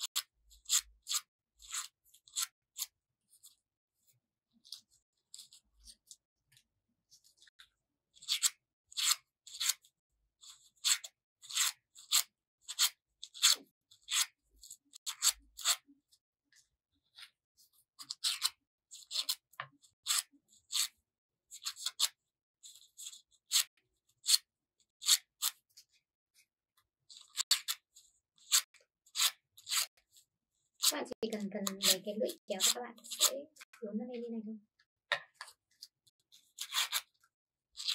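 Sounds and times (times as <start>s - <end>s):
scissor blade scraping paper: 0.0s - 3.7s, 4.6s - 6.2s, 7.1s - 15.9s, 17.0s - 26.5s, 27.1s - 33.8s, 35.5s - 37.9s.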